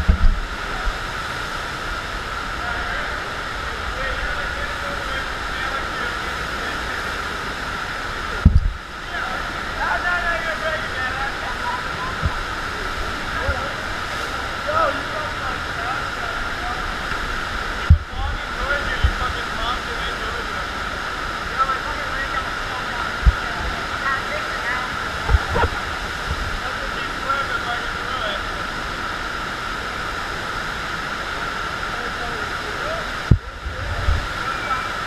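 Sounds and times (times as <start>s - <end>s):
short low thumps: 0.0s - 0.6s, 8.4s - 8.8s, 17.8s - 18.2s
rushing water: 0.0s - 35.0s.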